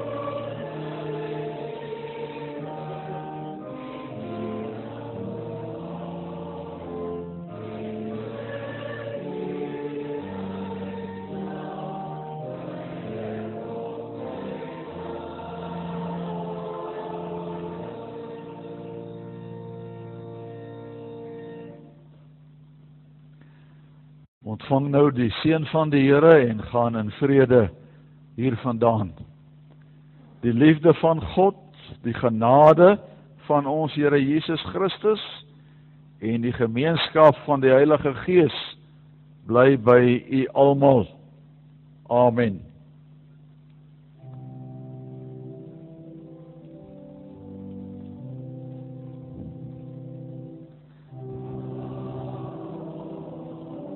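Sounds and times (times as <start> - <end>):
church organ chords: 0.0 - 53.9.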